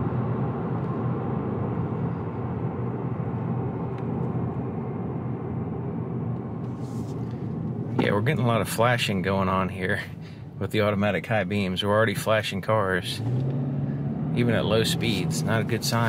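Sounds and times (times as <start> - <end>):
car cabin road noise: 0.0 - 16.0
tyre and engine sound: 13.0 - 16.0.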